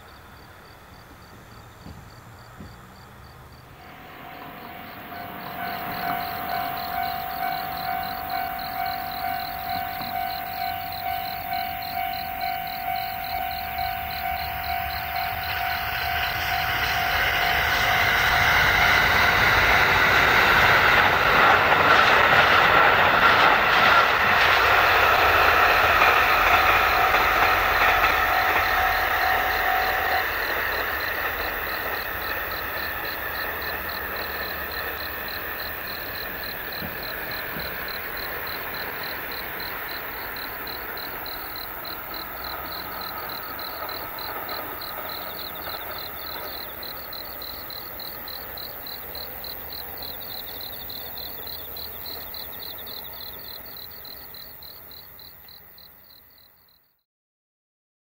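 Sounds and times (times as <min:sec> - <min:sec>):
diesel train passing: 0:00.2 - 0:56.8
level crossing alarm ringing: 0:03.8 - 0:20.0, 0:25.9 - 0:31.0.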